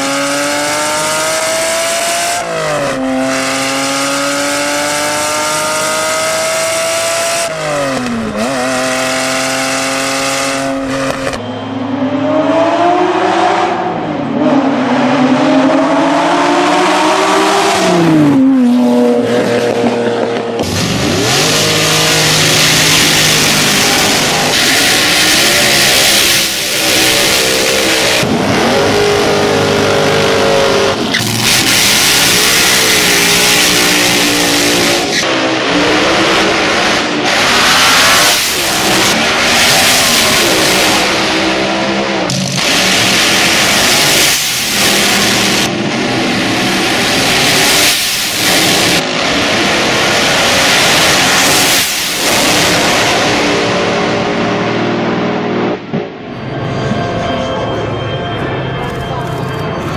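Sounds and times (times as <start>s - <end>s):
dragster engines revving: 0.0s - 55.9s.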